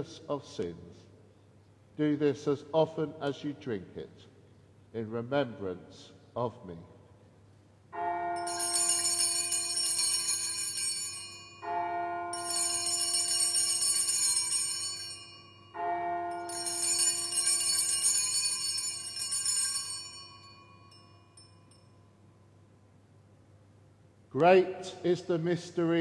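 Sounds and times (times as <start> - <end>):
altar bells ringing: 8.0 - 22.4.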